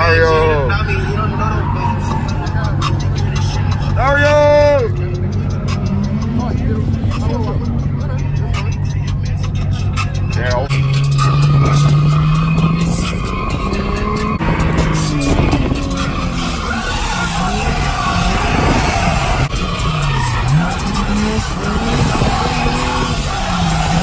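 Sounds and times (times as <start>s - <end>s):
background music: 0.0s - 24.0s
car engine revving: 0.0s - 24.0s
tyres skidding: 0.0s - 24.0s
voices: 0.0s - 24.0s.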